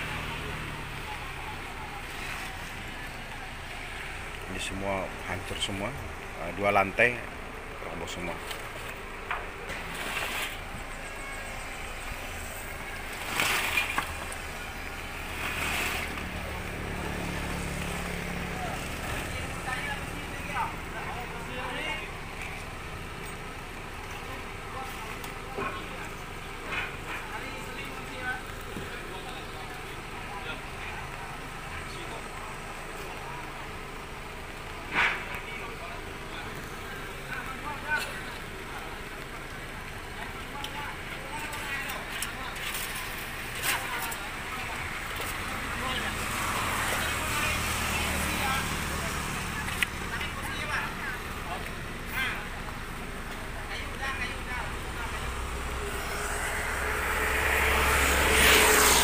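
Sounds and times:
background voices: 0:00.0 - 0:59.0.

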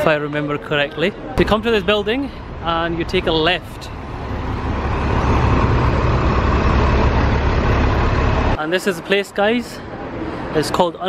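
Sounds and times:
road noise: 0:00.0 - 0:11.0
bus engine rumble: 0:01.0 - 0:11.0.

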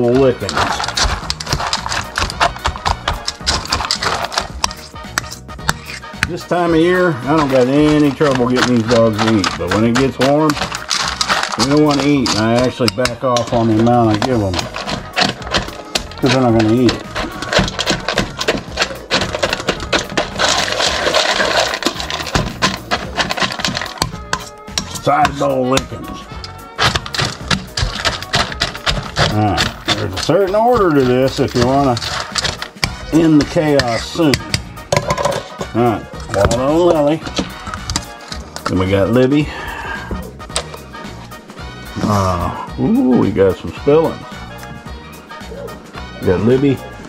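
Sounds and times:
dry dog food rattling: 0:00.0 - 0:05.4, 0:07.2 - 0:39.3
fork scraping metal bowl: 0:00.0 - 0:39.2.

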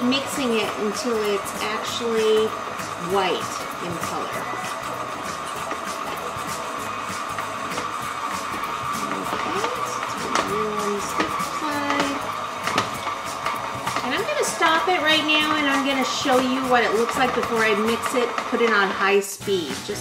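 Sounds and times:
stand mixer motor whine: 0:00.0 - 0:20.0.

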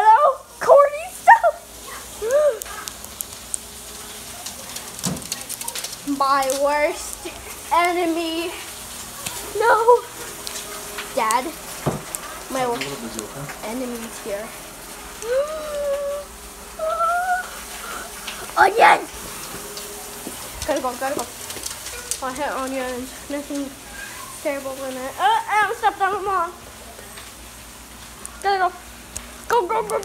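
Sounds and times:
pet animal whining: 0:23.8 - 0:24.5.

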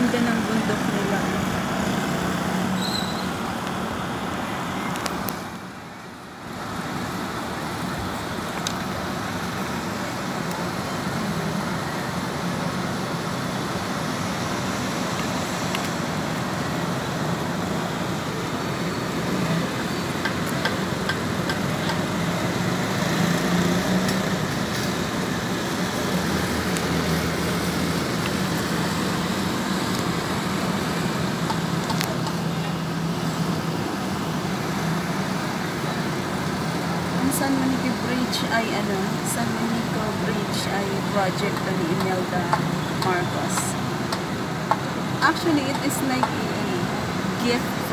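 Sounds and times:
road traffic noise: 0:00.0 - 0:47.9.

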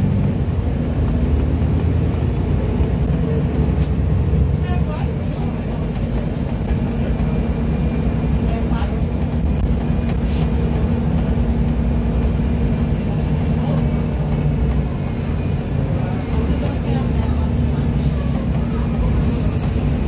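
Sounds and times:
bus diesel engine droning: 0:00.0 - 0:20.0.

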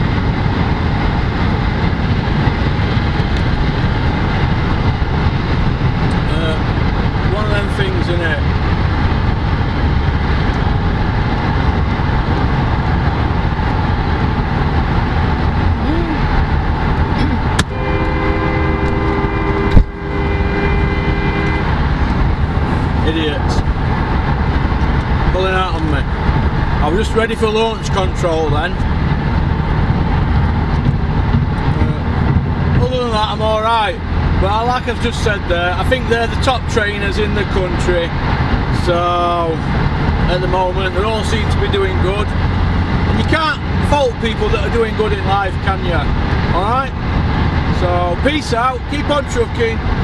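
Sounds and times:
car engine and road rumble: 0:00.0 - 0:50.0.

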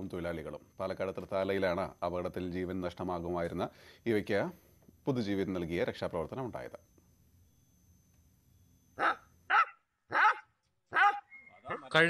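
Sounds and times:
dog barking: 0:09.0 - 0:11.9.

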